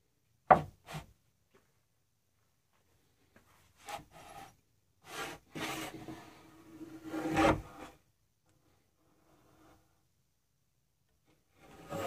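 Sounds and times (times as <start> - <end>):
wood scraping on wood: 3.8 - 8.0, 11.6 - 12.0.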